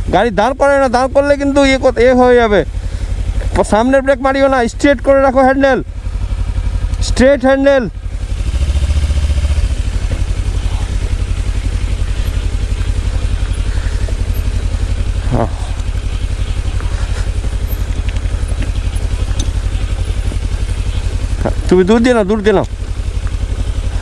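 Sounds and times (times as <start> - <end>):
motorcycle engine running: 0.0 - 24.0.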